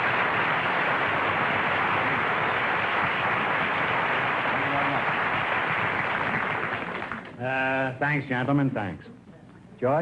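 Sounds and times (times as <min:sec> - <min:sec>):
audience applauding: 0:00.0 - 0:07.4.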